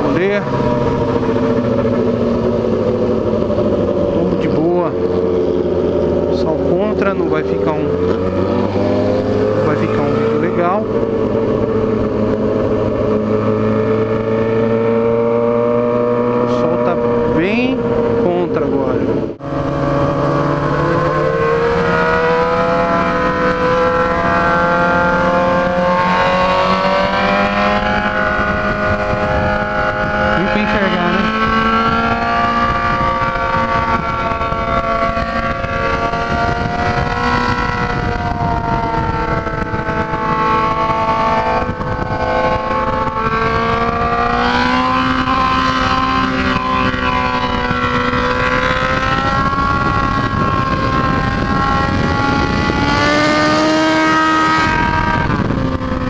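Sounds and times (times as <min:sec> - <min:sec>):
motorcycle engine cruising: 0:00.0 - 0:56.0
wind buffeting microphone: 0:00.0 - 0:56.0.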